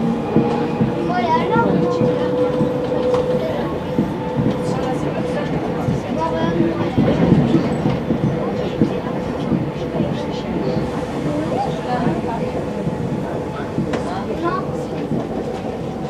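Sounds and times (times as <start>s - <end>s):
train rolling noise: 0.0s - 16.0s.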